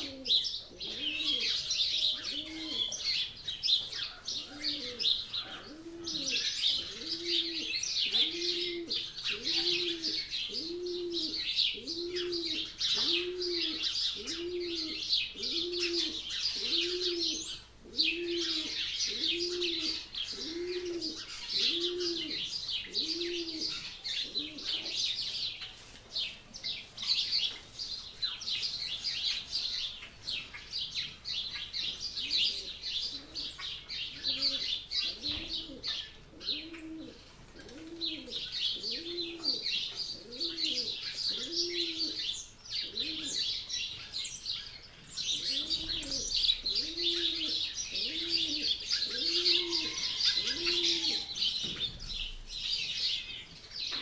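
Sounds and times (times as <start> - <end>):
low cooing call: 0.0 - 3.2, 4.4 - 25.0, 34.2 - 43.5, 45.4 - 51.4
birds chirping: 0.0 - 54.0.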